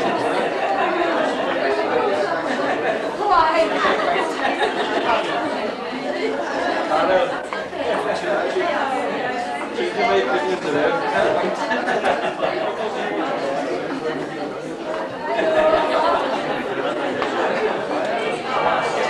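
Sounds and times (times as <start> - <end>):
indistinct group chatter: 0.0 - 19.0.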